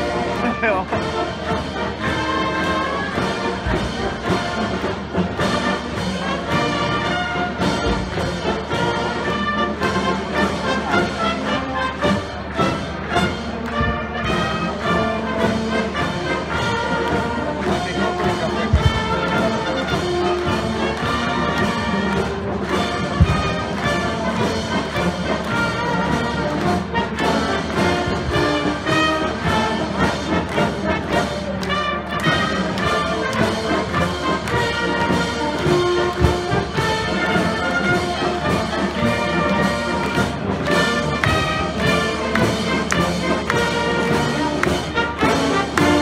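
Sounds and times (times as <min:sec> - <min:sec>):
brass band playing: 0:00.0 - 0:46.0.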